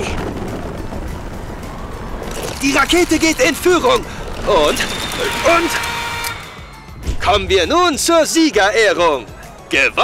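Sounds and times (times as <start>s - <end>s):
background music: 0.0s - 10.0s
soapbox cars rolling: 2.2s - 6.2s.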